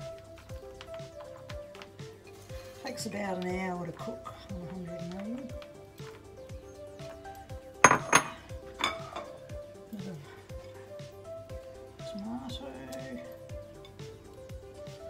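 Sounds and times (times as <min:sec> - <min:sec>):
background music: 0:00.0 - 0:15.0
china plate clinking: 0:07.8 - 0:09.4.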